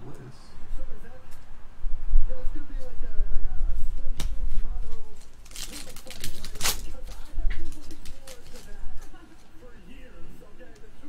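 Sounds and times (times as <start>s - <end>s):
foil wrapper crinkling and tearing: 5.1s - 9.5s.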